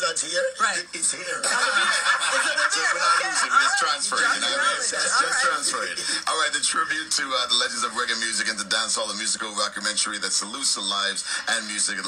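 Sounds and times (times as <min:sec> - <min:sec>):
people laughing: 0:01.2 - 0:07.2.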